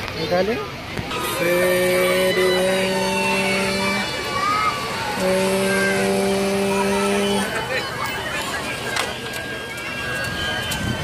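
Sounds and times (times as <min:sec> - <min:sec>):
fairground voices and noise: 0:00.0 - 0:11.0
low steady horn tone: 0:01.1 - 0:07.8.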